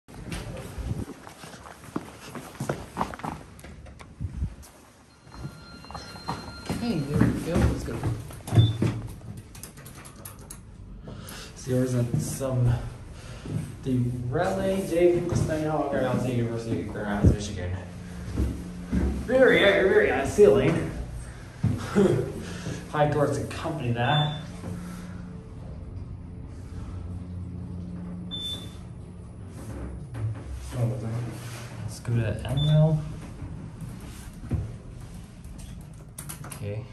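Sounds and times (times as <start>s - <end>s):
footsteps on tile floor: 0.2s - 3.9s, 14.5s - 22.9s
elevator humming: 3.8s - 36.5s.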